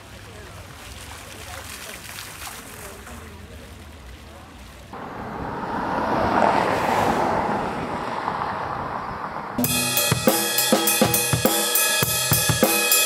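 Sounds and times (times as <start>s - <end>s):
car passing: 4.9s - 10.2s
drum kit beat with cymbals: 9.6s - 13.0s.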